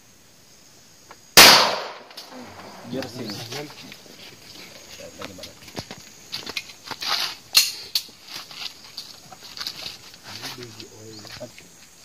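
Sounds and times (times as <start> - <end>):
sharp crack: 1.4 - 3.2.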